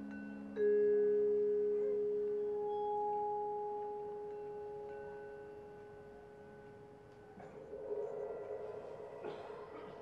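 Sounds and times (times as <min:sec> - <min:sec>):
low sustained note: 0:00.0 - 0:10.0.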